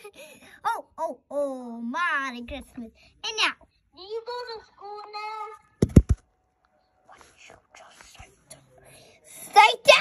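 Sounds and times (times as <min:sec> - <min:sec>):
child making wordless vocal sounds: 0:00.0 - 0:05.6.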